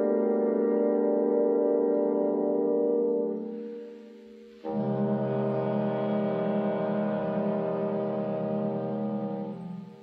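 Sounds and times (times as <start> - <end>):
loud low brass chord: 4.5 - 10.0.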